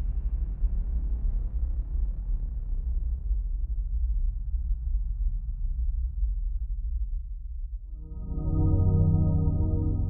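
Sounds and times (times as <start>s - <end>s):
low rumbling drone: 8.0s - 10.0s.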